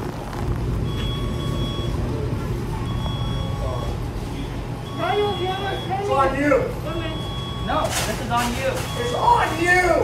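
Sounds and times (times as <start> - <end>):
steady low rumble: 0.0 - 5.9
electronic beeper long beeps: 0.8 - 2.1, 4.8 - 7.9, 8.8 - 9.6.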